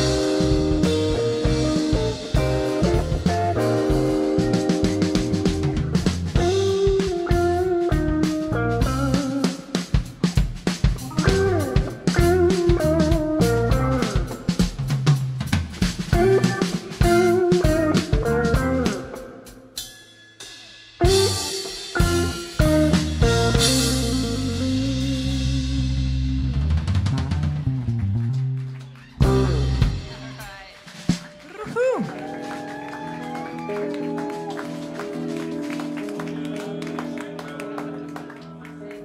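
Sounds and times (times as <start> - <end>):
lead electric guitar bent notes: 0.0 - 15.1, 16.1 - 19.7, 21.0 - 28.6, 29.2 - 30.4
live rock band playing: 0.0 - 39.0.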